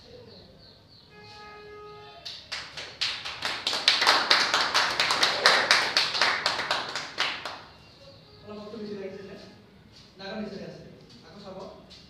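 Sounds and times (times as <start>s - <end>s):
audience applauding: 2.3s - 7.8s.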